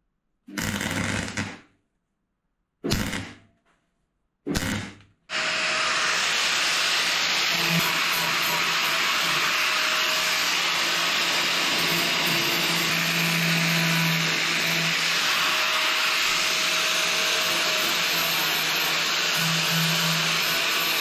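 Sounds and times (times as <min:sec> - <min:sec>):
angle grinder grinding steel: 0:05.3 - 0:21.0.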